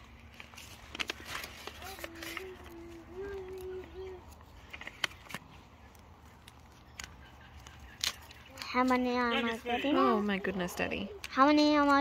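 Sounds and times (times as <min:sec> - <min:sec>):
plastic bag crinkling: 0:00.0 - 0:11.2
faint humming voice: 0:01.4 - 0:05.0.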